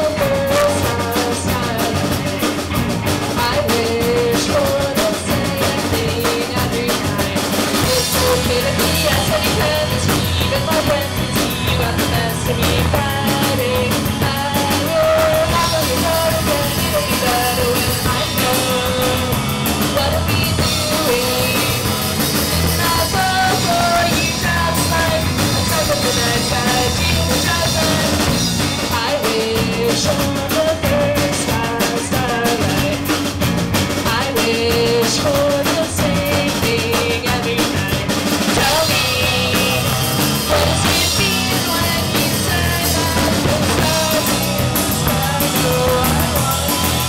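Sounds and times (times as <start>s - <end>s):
person singing: 0.0s - 33.4s, 34.0s - 47.0s
drums: 0.0s - 47.0s
electric guitars: 0.0s - 47.0s.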